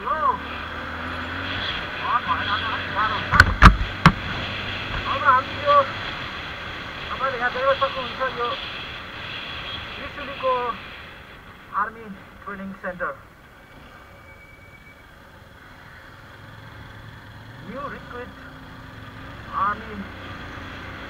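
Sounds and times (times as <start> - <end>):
sharp knocks: 3.3 - 4.3.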